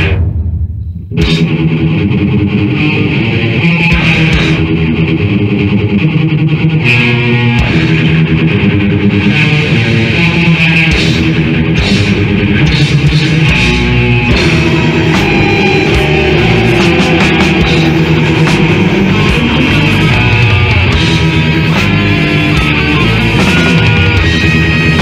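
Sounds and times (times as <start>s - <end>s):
metal music with distorted guitars: 0.0s - 25.0s.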